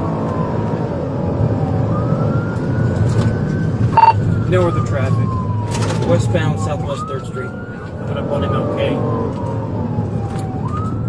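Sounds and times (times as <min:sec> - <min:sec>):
engine and tyres droning: 0:00.0 - 0:11.0
police siren wailing: 0:00.0 - 0:11.0.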